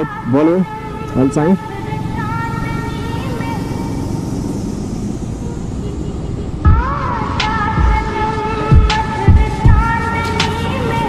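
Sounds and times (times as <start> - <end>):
motorcycle engine running: 0.0 - 11.0
wind and road rush: 0.0 - 11.0.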